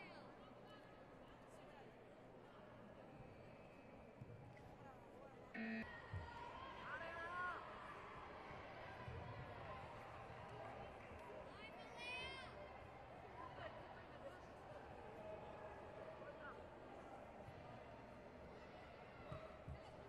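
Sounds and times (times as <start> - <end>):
short electronic tone: 5.6 - 5.8.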